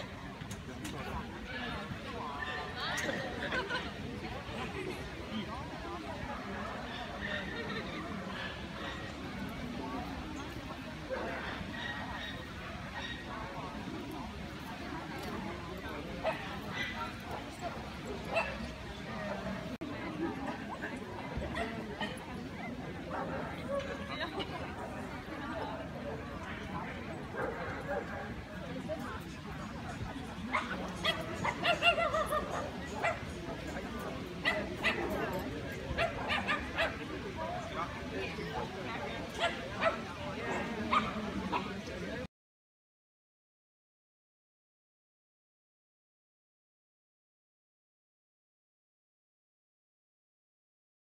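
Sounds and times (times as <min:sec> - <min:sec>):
people talking: 0:00.0 - 0:42.3.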